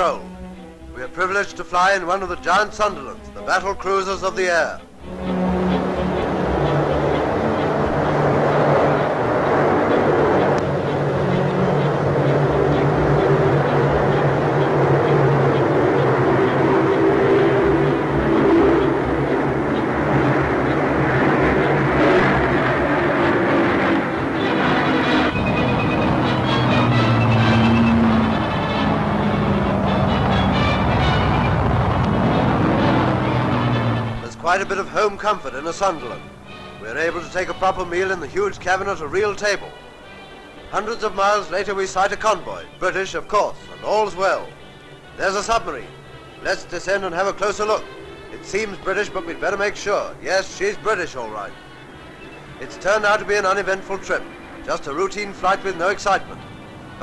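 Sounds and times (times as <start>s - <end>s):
aircraft engines droning: 0.0s - 57.0s.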